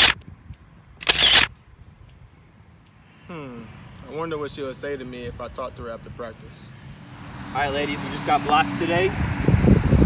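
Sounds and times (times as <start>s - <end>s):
phone camera shutter sound: 0.0s - 0.2s, 1.0s - 1.6s.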